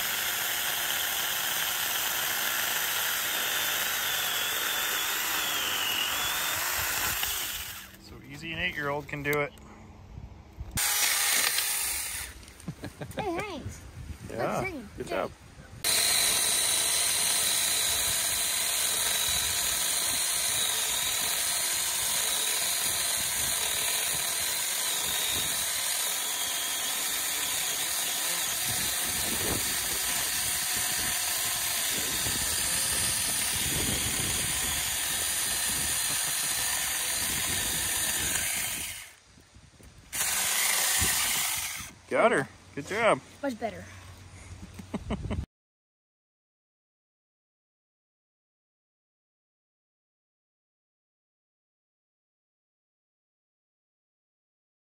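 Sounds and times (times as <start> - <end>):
electric chainsaw cutting log: 0.0 - 8.0, 10.8 - 12.8, 15.8 - 39.2, 40.1 - 42.0.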